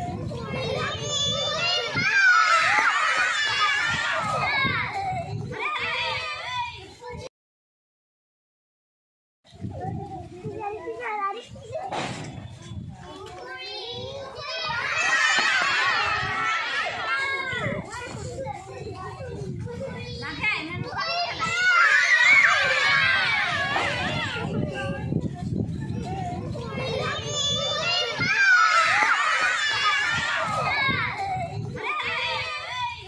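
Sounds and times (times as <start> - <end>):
children calling out together: 0.0 - 7.2, 13.0 - 33.0.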